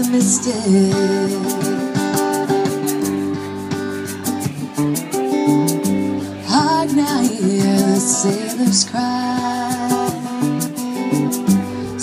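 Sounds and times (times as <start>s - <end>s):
acoustic guitar strummed: 0.0s - 12.0s
electric guitar: 0.0s - 12.0s
high ticking percussion: 0.0s - 12.0s.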